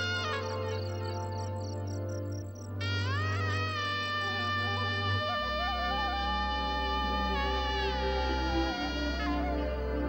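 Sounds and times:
wind instrument sliding notes: 0:02.8 - 0:10.0.

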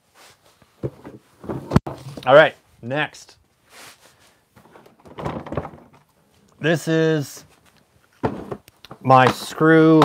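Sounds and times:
clothing rustle and shuffling: 0:00.0 - 0:02.8, 0:03.4 - 0:06.4.

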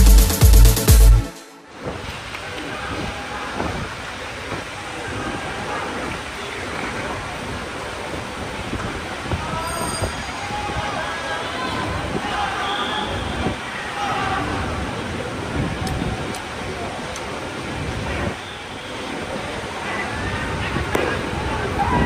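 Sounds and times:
indistinct distant voices: 0:01.7 - 0:22.0.

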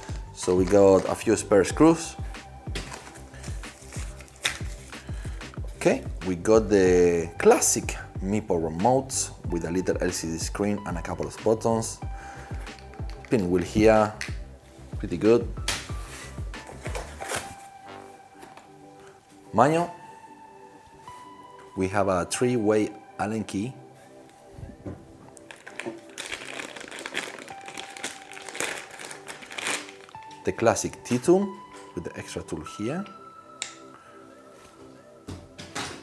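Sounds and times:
cardboard packaging rustling: 0:00.0 - 0:01.4, 0:02.7 - 0:05.0, 0:15.8 - 0:17.8, 0:25.3 - 0:30.4
background music with bass sweeps: 0:00.0 - 0:25.5.

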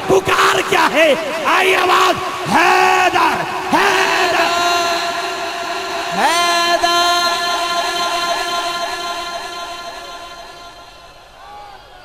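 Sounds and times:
man chanting over loudspeaker: 0:00.0 - 0:11.4.

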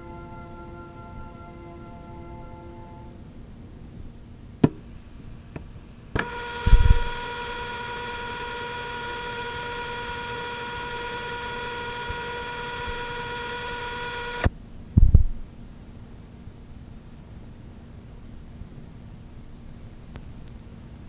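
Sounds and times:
steady buzzy tone: 0:00.0 - 0:15.3
cassette player click: 0:06.2 - 0:06.8.

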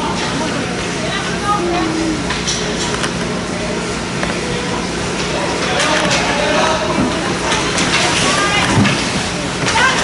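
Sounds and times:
spectators' voices: 0:00.2 - 0:10.0.

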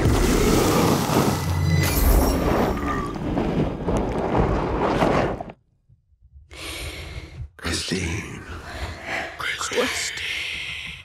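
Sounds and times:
loud rumbling destruction: 0:00.0 - 0:05.6
person breathing: 0:06.5 - 0:07.6, 0:08.4 - 0:11.0.

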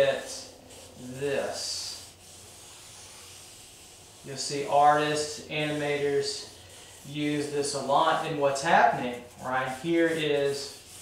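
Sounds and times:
pencil rubbing on paper: 0:00.0 - 0:11.0.

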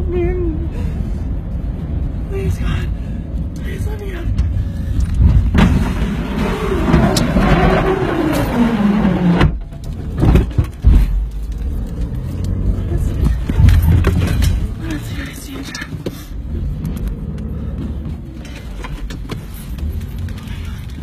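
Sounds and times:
low rumble inside car: 0:00.0 - 0:21.0.

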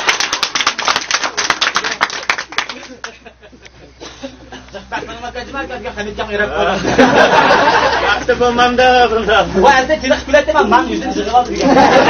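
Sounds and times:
men clapping hands: 0:00.0 - 0:03.3.

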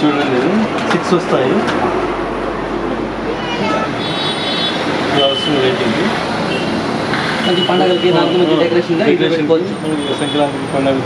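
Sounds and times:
people talking: 0:00.0 - 0:01.8, 0:05.1 - 0:06.2, 0:07.4 - 0:11.0.

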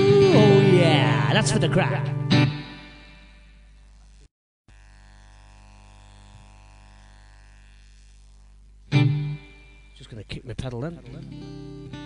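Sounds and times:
amplifier buzz and mains hum: 0:02.3 - 0:12.0.

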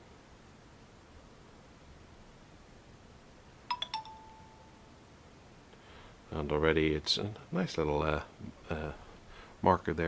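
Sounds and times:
smartphone electronic chime: 0:03.7 - 0:04.9.

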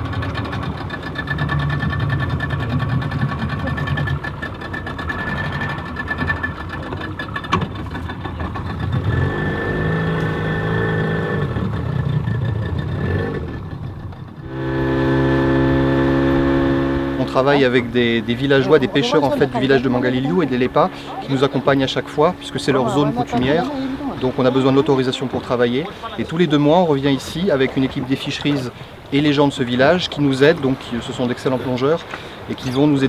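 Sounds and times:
outboard motor running: 0:00.0 - 0:33.0.

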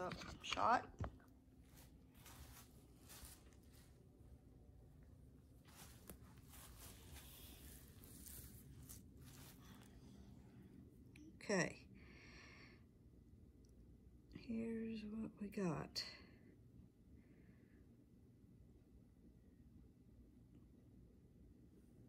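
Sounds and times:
soft rustles: 0:00.0 - 0:11.0.

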